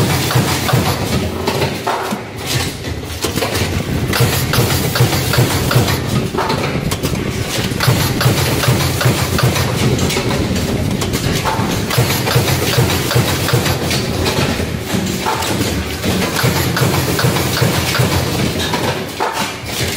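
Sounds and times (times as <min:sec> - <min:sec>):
card punching machine running: 0:00.0 - 0:19.9.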